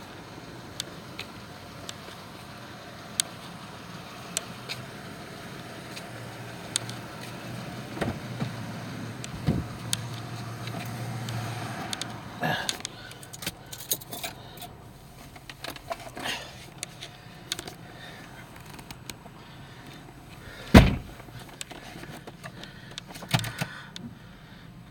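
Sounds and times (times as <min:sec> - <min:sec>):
car engine idling: 0:00.0 - 0:24.9
sharp clicks: 0:06.7 - 0:07.0
keys jangling: 0:13.1 - 0:14.7.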